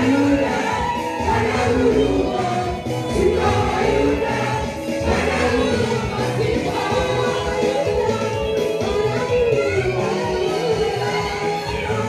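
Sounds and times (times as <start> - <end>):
group singing gospel: 0.0 - 12.0.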